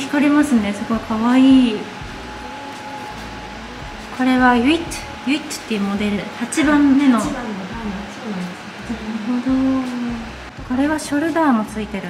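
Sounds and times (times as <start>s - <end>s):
woman speaking: 0.0s - 2.0s, 3.8s - 12.0s
woman humming: 0.0s - 11.9s.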